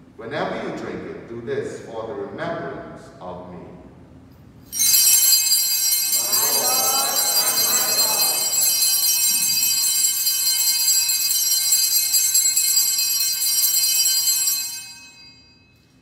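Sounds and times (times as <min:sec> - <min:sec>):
small bells ringing: 0:04.7 - 0:16.0.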